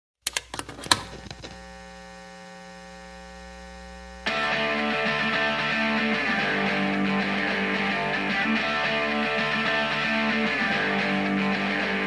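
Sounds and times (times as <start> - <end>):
amplifier crackles: 0.2 - 6.0
guitar amplifier hum and buzz: 0.2 - 12.0
loud rock music: 4.3 - 12.0.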